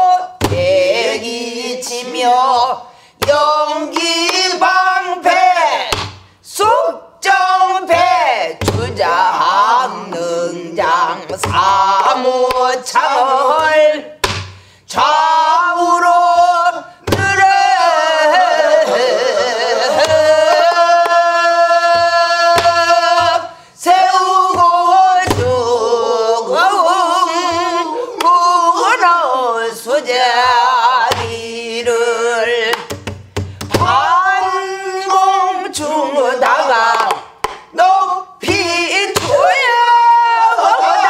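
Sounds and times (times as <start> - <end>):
singer breathing in: 2.8 - 3.2, 14.4 - 14.9, 23.5 - 23.8.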